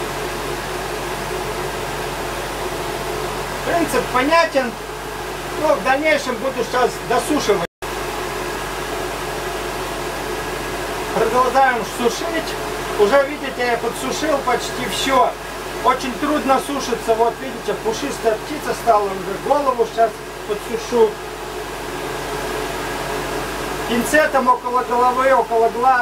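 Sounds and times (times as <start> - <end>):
faint motor hum: 0.0 - 26.0
hot-air dryer blowing: 0.0 - 26.0.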